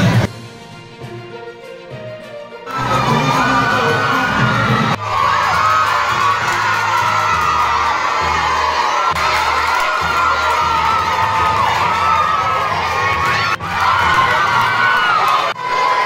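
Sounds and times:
crowd of women ululating: 2.7 - 16.0.

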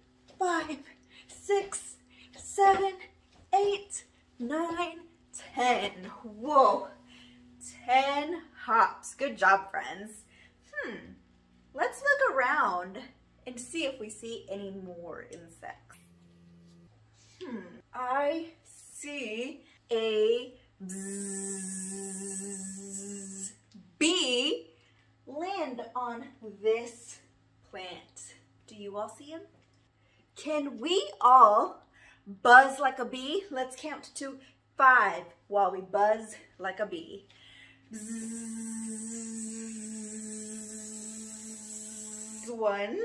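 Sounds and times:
woman humming like a bee: 20.8 - 23.6, 37.9 - 42.6.

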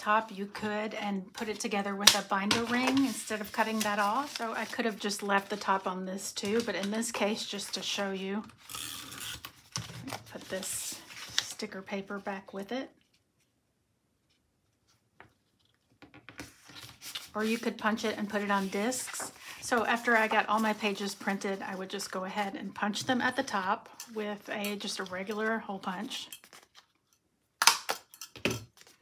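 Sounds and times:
paper sheets handled on table: 1.3 - 6.9, 16.3 - 22.2.

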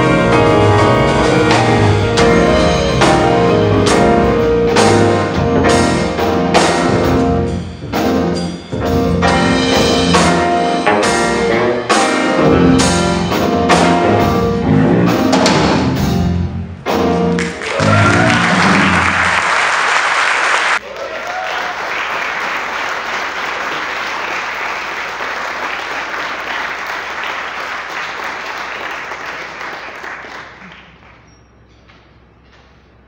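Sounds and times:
piano bass and drum group playing: 0.0 - 20.8
audience applauding: 17.3 - 31.3.

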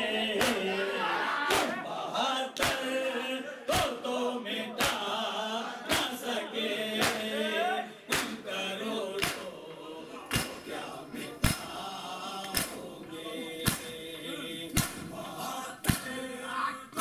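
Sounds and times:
men chanting together: 0.0 - 17.0
hands slapping chests: 0.4 - 0.7, 1.5 - 1.8, 2.6 - 2.9, 4.8 - 5.1, 5.9 - 6.2, 7.0 - 7.3, 8.1 - 8.4, 9.2 - 9.6, 10.3 - 11.8, 12.4 - 14.1, 14.7 - 15.2, 15.8 - 16.2.

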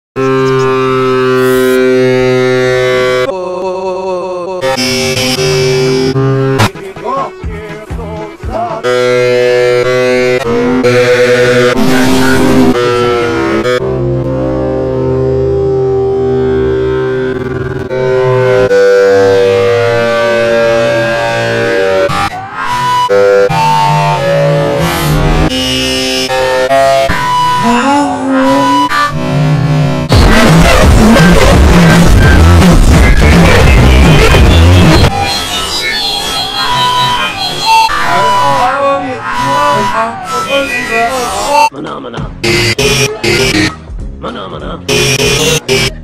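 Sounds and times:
electronic drone: 0.2 - 3.3, 4.6 - 7.1, 8.6 - 41.7, 42.4 - 43.8, 44.9 - 46.0
tones sliding downward in pitch: 0.2 - 3.3, 4.6 - 6.7, 8.8 - 30.2, 42.4 - 43.8, 44.9 - 46.0.

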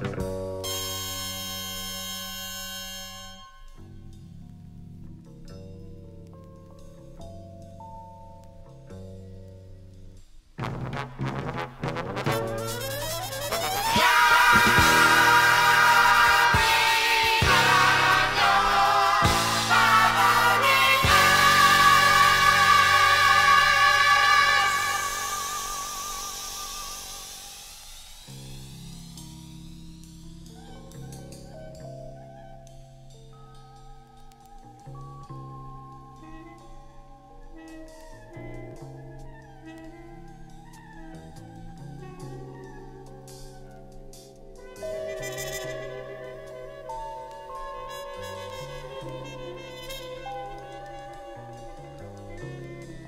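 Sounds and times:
bass and drums: 0.0 - 2.7, 8.6 - 33.2
horn section holding a chord: 10.6 - 27.3, 44.8 - 53.0.

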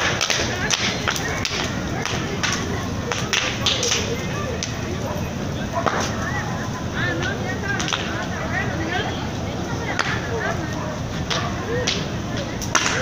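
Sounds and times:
sharp cracks: 0.0 - 4.7, 11.3 - 13.0
fire rushing: 0.0 - 13.0.

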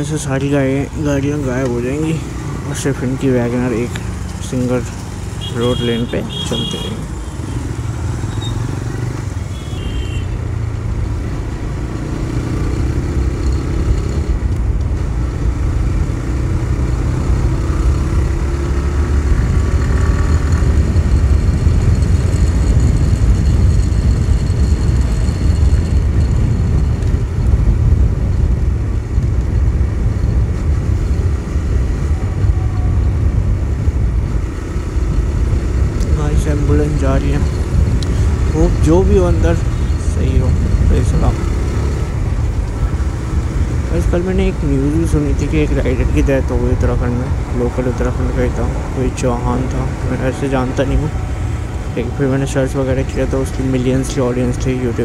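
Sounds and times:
motorcycle engine accelerating: 0.9 - 55.0
wind noise on microphone: 13.5 - 47.7.

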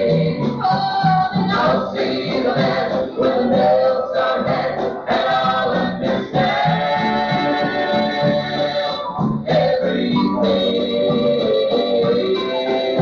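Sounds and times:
gospel group singing in harmony: 0.0 - 13.0
instrumental accompaniment: 0.0 - 13.0.

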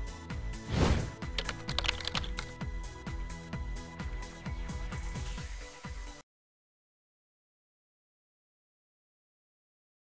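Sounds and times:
keyboard typing clicks: 1.3 - 2.6.

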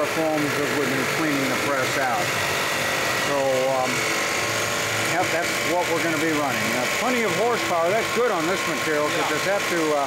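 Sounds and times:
screw press mechanical hum: 0.0 - 10.0.

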